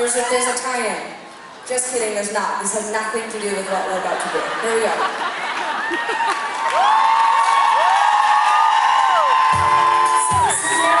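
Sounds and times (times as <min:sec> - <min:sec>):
crowd screaming and whooping: 0:05.2 - 0:11.0.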